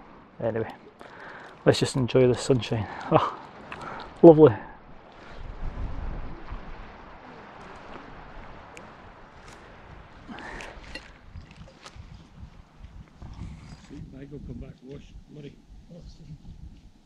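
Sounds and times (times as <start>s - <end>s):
wind on microphone: 4.8s - 17.0s.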